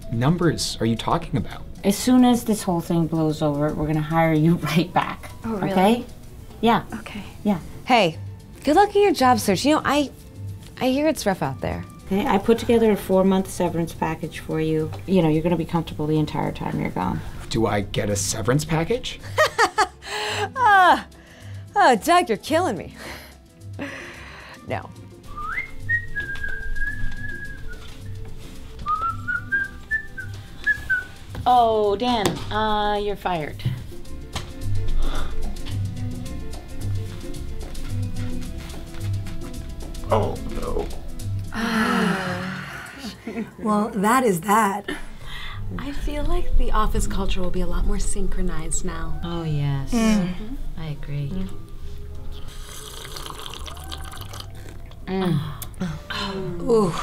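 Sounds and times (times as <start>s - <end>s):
soft music with low beat: 0.0s - 42.4s, 43.2s - 52.6s
person whistling a tune: 25.3s - 28.2s, 28.8s - 31.2s
people slurping drinks: 52.3s - 55.0s.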